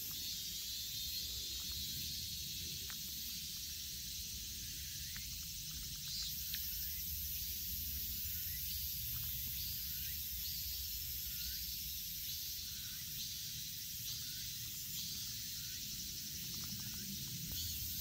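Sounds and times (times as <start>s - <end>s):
insects shrill hiss: 0.0s - 18.0s
short insect call: 0.0s - 18.0s.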